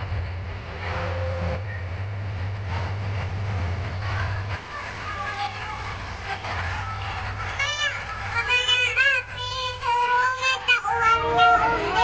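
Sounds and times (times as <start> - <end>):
sound system hum: 0.0 - 12.0
crowd hubbub: 3.8 - 12.0
autotuned singing over speakers: 6.7 - 12.0.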